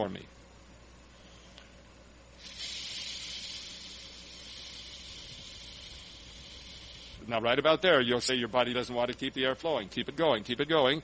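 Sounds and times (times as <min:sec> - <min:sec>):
person exhaling hissing: 0:02.4 - 0:07.3.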